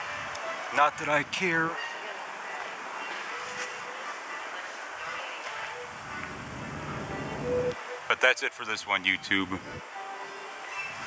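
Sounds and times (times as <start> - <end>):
steady traffic noise: 0.0 - 11.0
vehicle rumbling by: 5.8 - 7.8.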